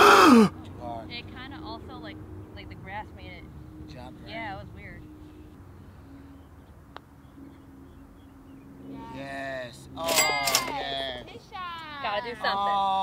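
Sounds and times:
people calling out loudly: 0.0s - 0.5s.

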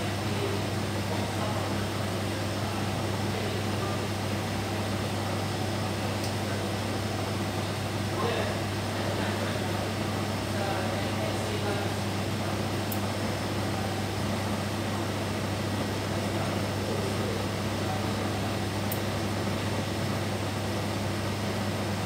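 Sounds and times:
low machine hum: 0.0s - 22.0s.

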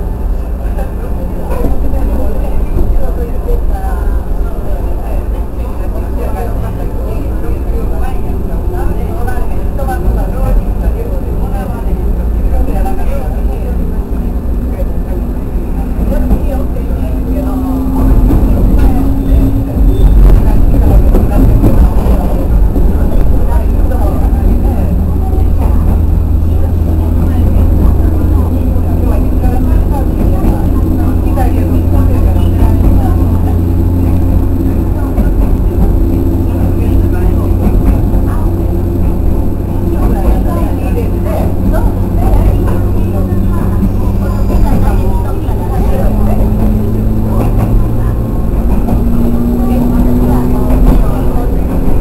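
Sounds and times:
electric train low rumble: 0.0s - 52.0s.

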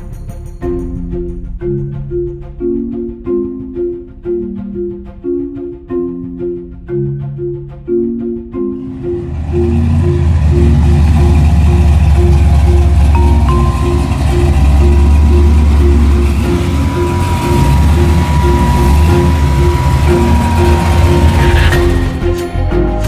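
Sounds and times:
marimba-like music: 0.0s - 23.0s
car engine low rumble: 8.8s - 23.0s.

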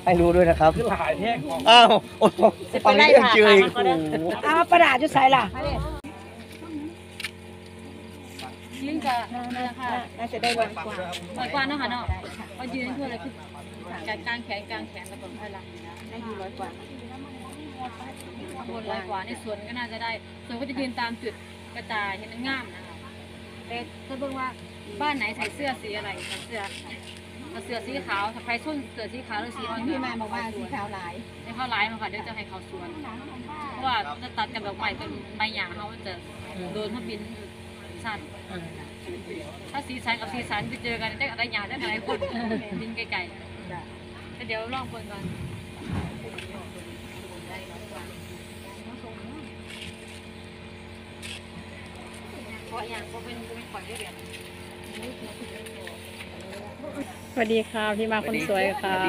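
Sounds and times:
faint voices: 0.0s - 19.2s
low mechanical hum: 0.0s - 59.0s
woman speaking: 2.7s - 7.0s, 8.3s - 39.1s, 39.7s - 49.6s, 52.3s - 59.0s.

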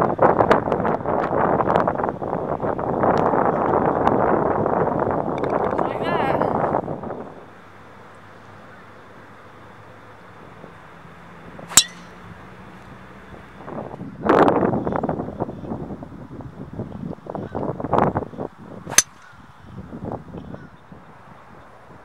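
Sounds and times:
golf club striking ball: 11.7s - 12.5s, 18.9s - 19.4s.

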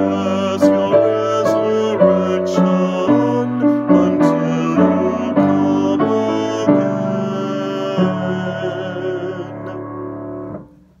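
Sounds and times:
person singing with vibrato: 0.0s - 10.5s
piano chord: 0.0s - 11.0s.

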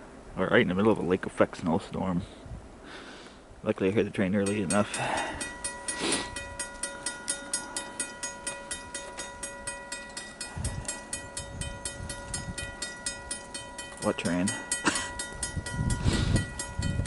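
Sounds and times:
railroad crossing bell ringing: 4.4s - 17.0s.

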